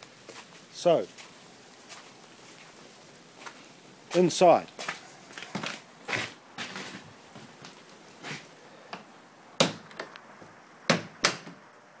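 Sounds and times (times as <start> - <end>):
sharp knocks and clicks: 10.9 - 11.6.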